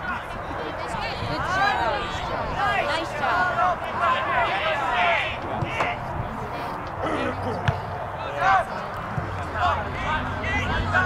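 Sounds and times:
distant shouting voices: 0.0s - 11.0s.

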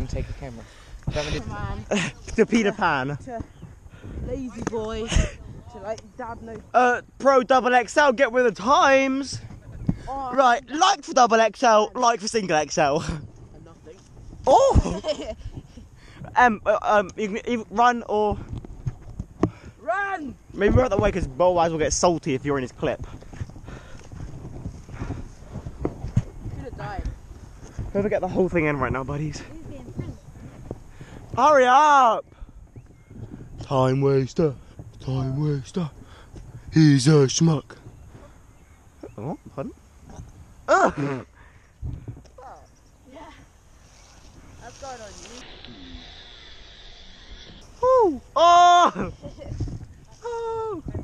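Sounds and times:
footsteps running on dirt: 22.9s - 36.7s
person exclaiming ooh: 47.8s - 49.2s, 50.2s - 50.8s.

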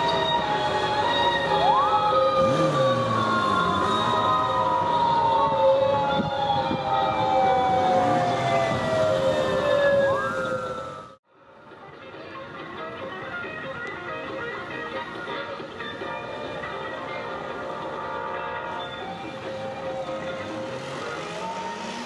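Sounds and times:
motorcycle engines revving: 0.0s - 10.9s, 16.2s - 22.0s
police motorcycle sirens wailing: 0.0s - 11.2s, 14.6s - 22.0s.

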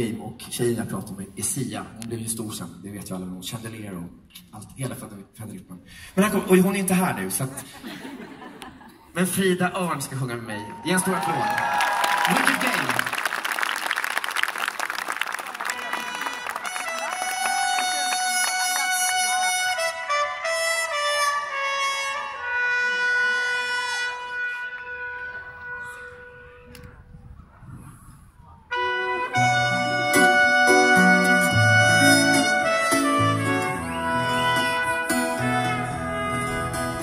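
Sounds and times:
audience applause: 10.6s - 19.7s
keyboard playing held notes: 15.7s - 26.6s, 28.7s - 37.0s
rock band playing: 29.1s - 37.0s.

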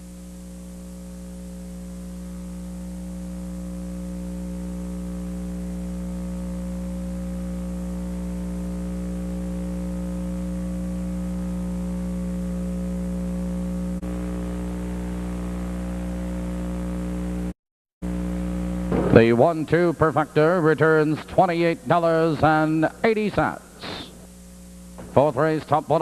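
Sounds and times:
electrical hum: 0.0s - 26.0s.

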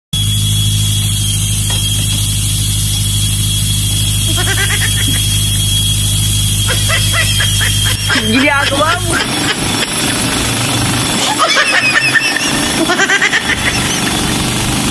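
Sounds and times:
thin steady high tone: 0.2s - 14.8s
jackhammer breaking concrete: 0.6s - 5.7s, 6.6s - 14.9s.

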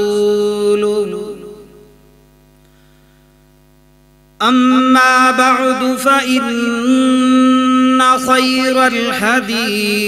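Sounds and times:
electrical mains hum: 0.0s - 10.0s
echo of chanted voice: 4.4s - 10.0s.

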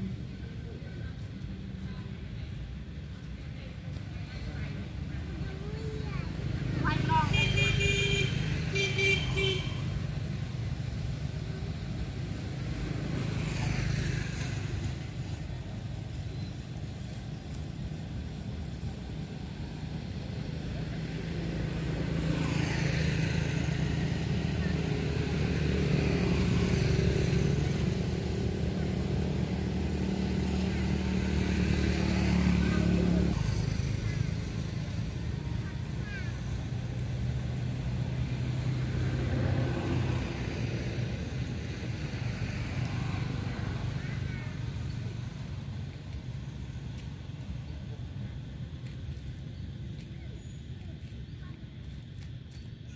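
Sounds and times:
engine humming: 0.0s - 52.9s.

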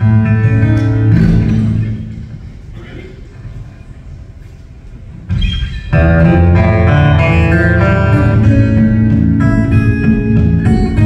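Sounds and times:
amplified acoustic guitars: 5.4s - 11.0s.

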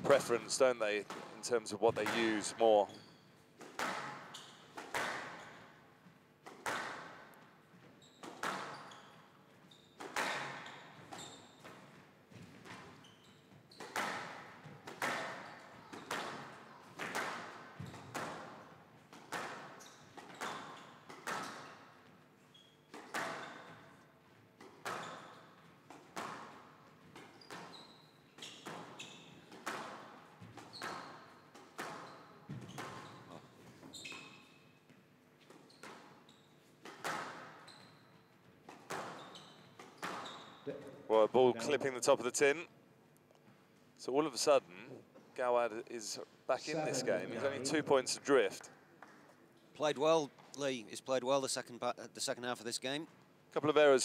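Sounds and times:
squash racket strikes: 3.6s - 5.5s, 6.4s - 7.3s, 8.2s - 8.9s, 10.0s - 13.0s, 13.7s - 21.8s, 24.6s - 27.8s, 28.4s - 34.2s, 36.8s - 37.7s
squash ball hitting wall: 6.5s - 7.2s, 36.9s - 37.6s.

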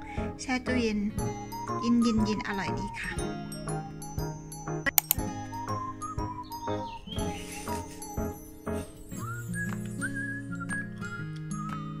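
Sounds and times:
light tinkling background music: 0.0s - 10.4s.

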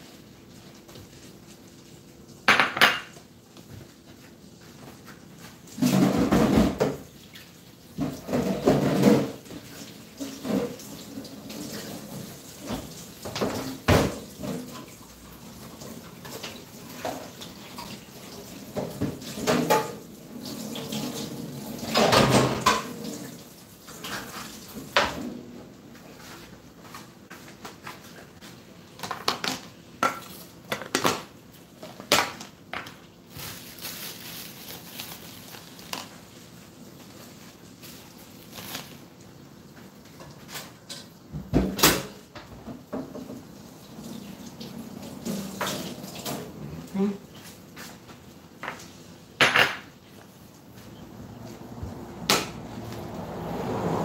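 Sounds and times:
tap water running: 0.2s - 25.4s, 36.9s - 49.2s
dishes clinking in sink: 2.5s - 3.3s, 18.7s - 23.3s, 48.6s - 50.0s.

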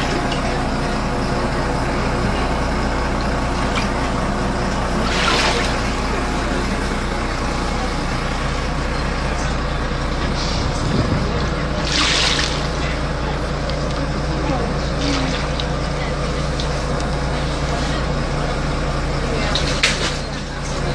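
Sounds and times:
bus engine drone: 0.0s - 20.9s.

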